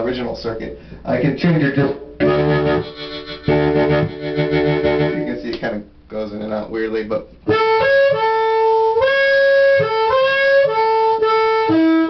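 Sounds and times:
blues harmonica chords: 1.1 - 5.6, 7.4 - 12.0.

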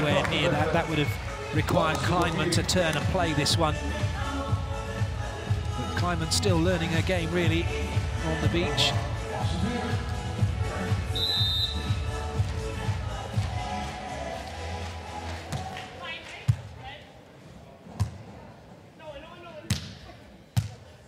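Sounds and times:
broadcast music: 0.0 - 15.6.

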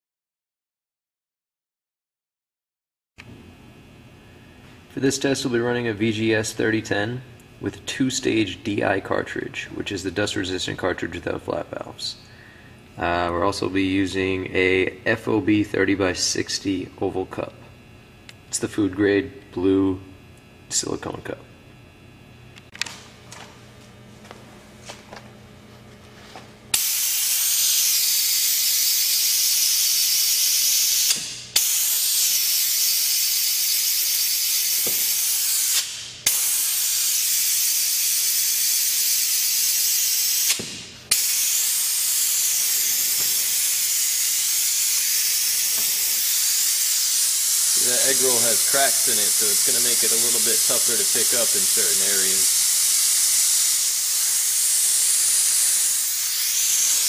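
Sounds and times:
compressed air hiss: 26.7 - 57.0.

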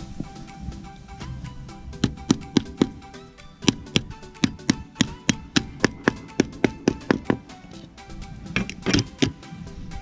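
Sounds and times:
hammer tapping in a nail: 2.0 - 3.0, 8.6 - 9.4.

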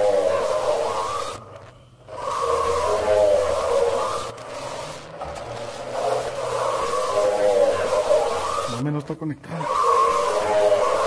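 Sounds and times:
warbling electronic voice-like sound: 0.0 - 11.0.

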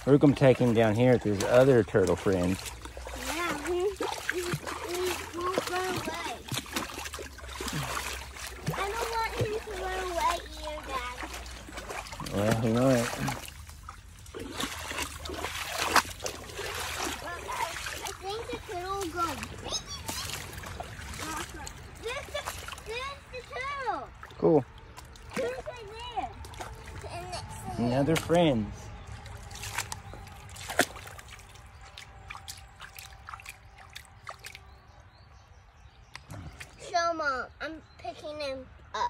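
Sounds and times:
footsteps splashing through water: 0.0 - 35.2
young child's voice: 3.2 - 6.6, 8.6 - 11.4, 17.0 - 24.2, 25.3 - 28.0, 36.7 - 39.0.

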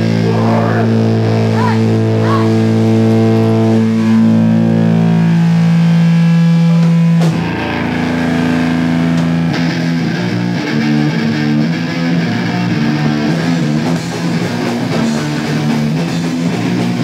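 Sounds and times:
electric guitars droning chord: 0.0 - 17.0.

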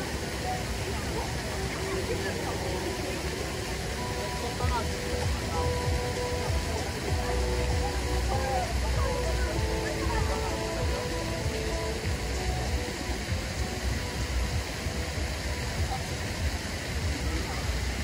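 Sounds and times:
distant voices chattering: 0.0 - 18.0
faint music: 0.0 - 18.0
steady low rumble: 0.0 - 18.0.

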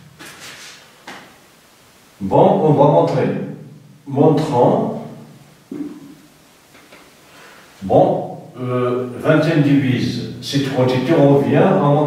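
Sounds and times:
soft scraping: 0.2 - 0.9.

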